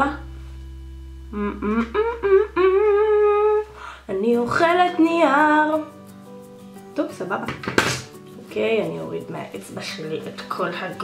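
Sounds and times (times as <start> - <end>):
woman humming with closed lips: 1.2 - 4.2.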